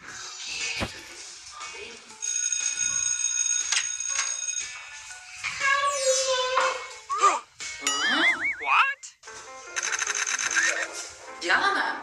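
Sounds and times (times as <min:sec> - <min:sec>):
background music: 0:00.0 - 0:12.0
electronic ringtone tone: 0:02.2 - 0:05.4, 0:07.8 - 0:09.0.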